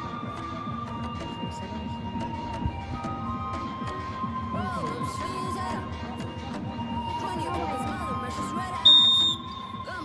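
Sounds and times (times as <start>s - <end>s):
background music: 0.0s - 10.0s
referee's whistle blast: 8.8s - 9.8s.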